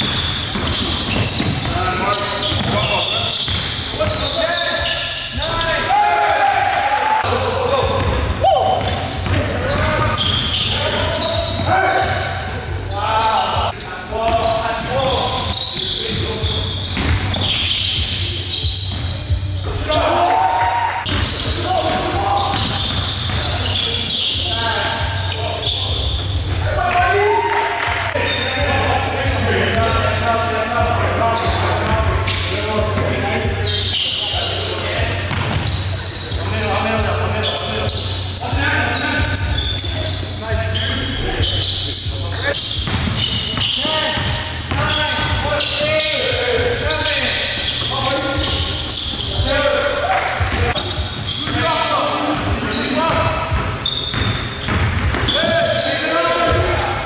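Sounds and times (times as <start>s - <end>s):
basketball bouncing on wooden floor: 0.0s - 1.8s, 2.4s - 4.2s, 17.0s - 17.5s, 35.2s - 35.7s, 42.8s - 45.4s, 52.3s - 55.4s.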